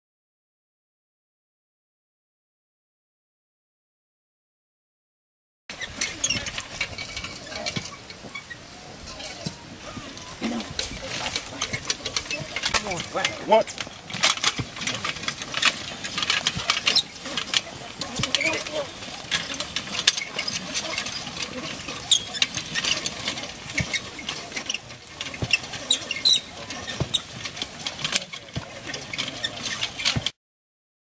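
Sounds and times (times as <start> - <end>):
ripper crackling through stubble: 5.7 - 30.2
footsteps: 5.7 - 30.3
people talking: 5.9 - 29.9.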